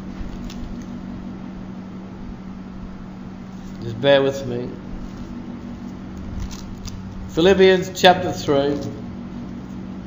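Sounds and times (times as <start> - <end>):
steady low hum: 0.0 - 10.0
paper pages rustling: 0.2 - 0.9, 4.9 - 7.2.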